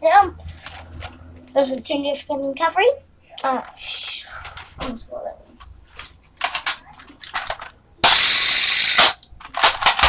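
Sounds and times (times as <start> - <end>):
handling clicks and knocks: 5.6 - 7.8, 9.0 - 10.0.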